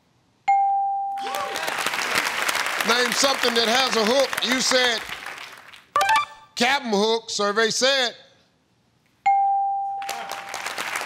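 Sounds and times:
audience applause: 1.2s - 5.9s, 10.0s - 11.0s
electronic chime ding: 6.0s - 6.5s.

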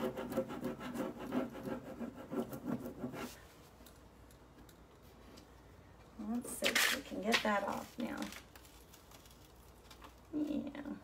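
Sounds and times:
tool scratching on panel: 0.0s - 3.4s.

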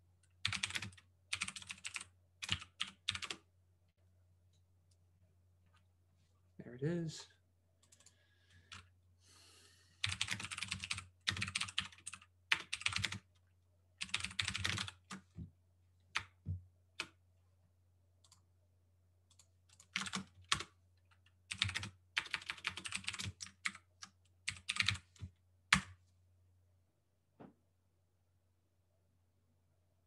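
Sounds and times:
typing on computer keyboard: 0.2s - 3.4s, 10.0s - 13.4s, 14.0s - 15.3s, 19.3s - 25.9s.

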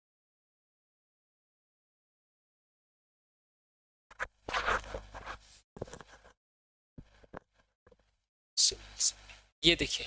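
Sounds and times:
scratching rustling noise: 4.1s - 6.4s.

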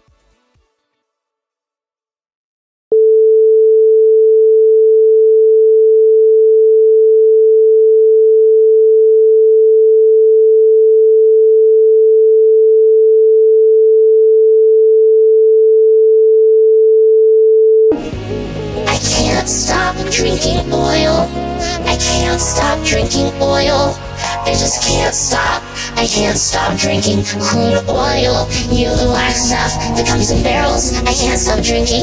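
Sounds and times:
electronic music: 17.9s - 32.0s.

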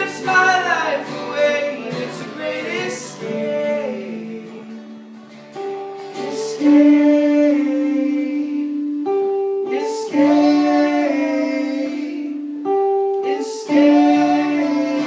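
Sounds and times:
man singing: 0.0s - 4.8s, 6.2s - 9.0s, 9.6s - 12.5s, 13.2s - 15.0s
acoustic guitar strumming: 0.0s - 15.0s
electric guitar strumming: 0.0s - 15.0s.

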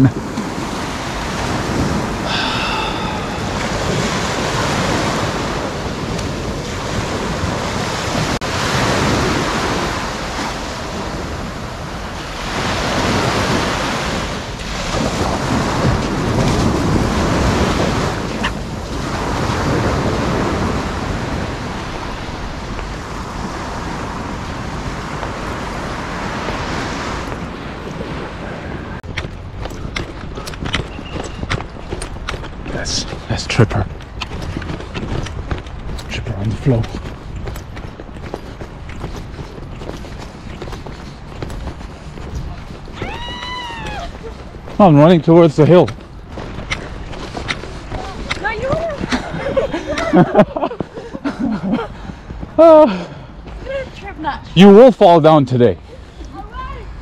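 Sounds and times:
sea surf breaking on beach: 0.0s - 29.2s
wind buffeting microphone: 0.0s - 54.8s.

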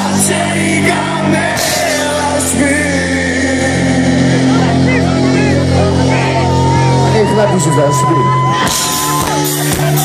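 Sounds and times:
rock band sustained chord: 0.0s - 10.0s
crowd whistling and shouting: 5.4s - 10.0s.

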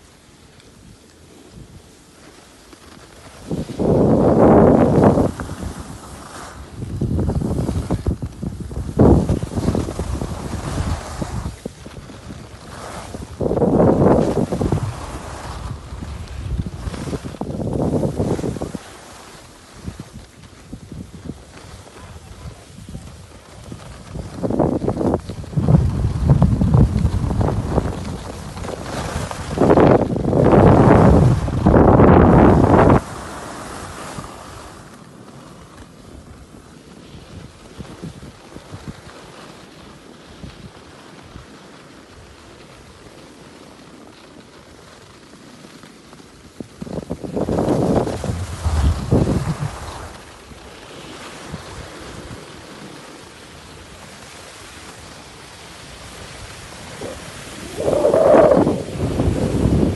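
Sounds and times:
wind buffeting microphone: 3.4s - 18.8s, 19.7s - 33.3s, 46.5s - 50.7s, 53.8s - 59.9s.

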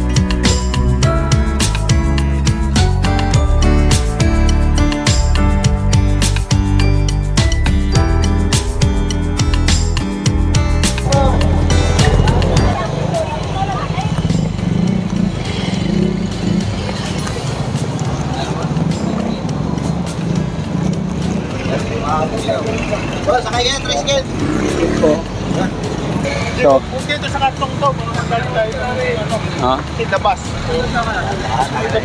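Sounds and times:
motorcycle engines rumbling: 0.0s - 32.0s
voices of passers-by: 10.9s - 32.0s.

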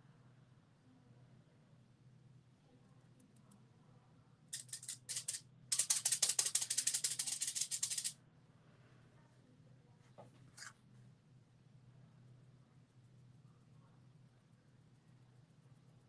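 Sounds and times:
rapid rattling of small object: 4.5s - 8.2s.

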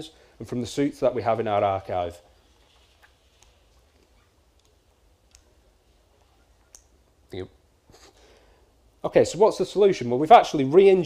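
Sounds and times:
faint sharp clicks: 3.3s - 5.5s.

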